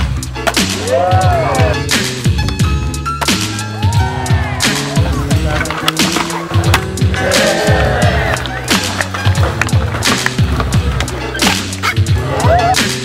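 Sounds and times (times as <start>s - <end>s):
background music with beat: 0.0s - 13.0s
skateboard wheels rolling on concrete: 0.0s - 13.0s
skateboard clacks: 4.8s - 12.0s.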